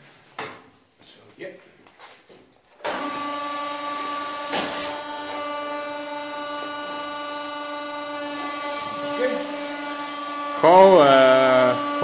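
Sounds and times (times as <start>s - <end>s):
hydraulic pump motor humming: 2.8s - 12.0s.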